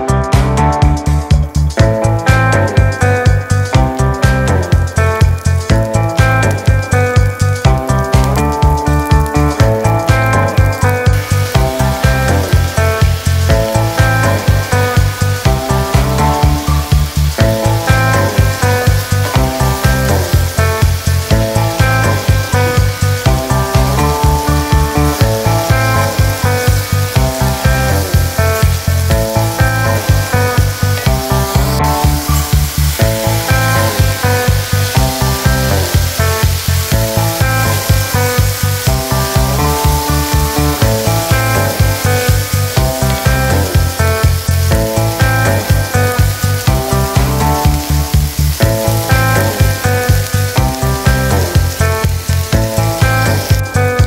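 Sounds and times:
background music with steady beat: 0.0 - 54.0
food sizzling in a skillet: 0.1 - 54.0.

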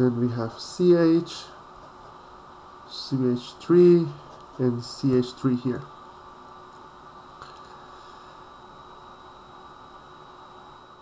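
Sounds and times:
electrical hum: 0.0 - 11.0
room tone hiss: 0.0 - 11.0
thin high whine: 0.0 - 11.0.

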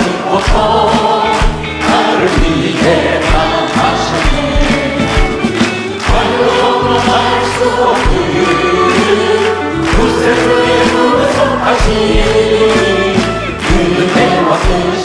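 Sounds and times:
man singing a hymn: 0.0 - 5.0, 6.1 - 15.0
band playing with drum beat: 0.0 - 15.0.

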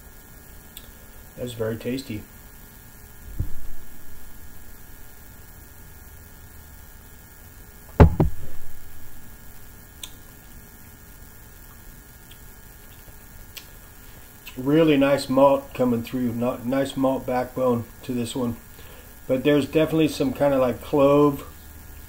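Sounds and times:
steady mains hum: 0.0 - 22.0
dull thump: 3.3 - 3.9, 7.9 - 9.1
sharp double knock: 7.9 - 8.8.

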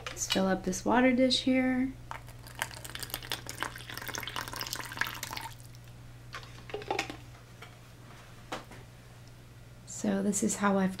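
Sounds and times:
water pouring into plastic cup: 2.1 - 5.8.

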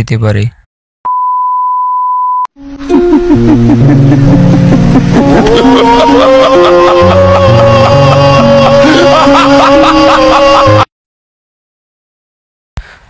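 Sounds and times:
steady test tone beep: 1.1 - 2.5
music with held notes: 2.6 - 10.8.

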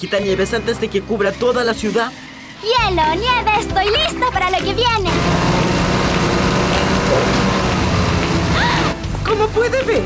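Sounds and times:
cartoon motor running: 5.0 - 9.0.

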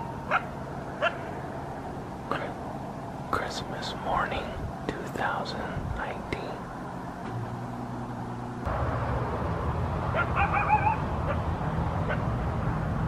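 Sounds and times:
coyote howling: 0.0 - 1.5, 10.1 - 12.3
low steady hum: 0.0 - 13.0.

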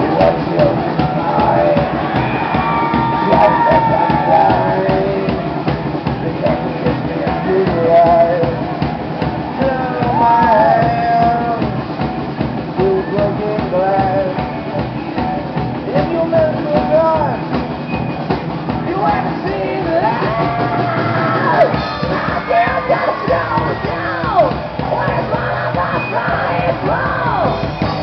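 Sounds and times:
person singing: 0.0 - 8.8, 9.5 - 11.8, 12.8 - 15.2, 18.8 - 28.0
drums: 0.0 - 28.0
electric guitars: 0.0 - 28.0.

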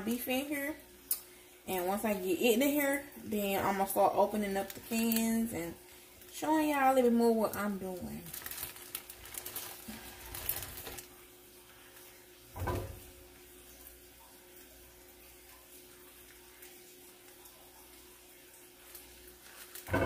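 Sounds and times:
plastic wrapping crinkling: 3.6 - 12.1, 18.8 - 20.0
faint handling noise: 8.3 - 11.1.

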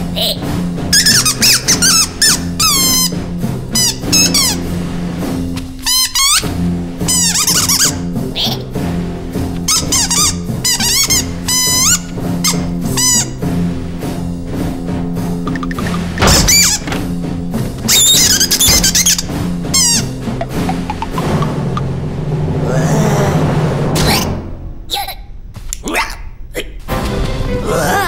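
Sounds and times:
music with low held notes: 0.0 - 28.0
squeaky cartoon voices: 7.2 - 8.7, 9.7 - 12.0, 17.9 - 21.4.

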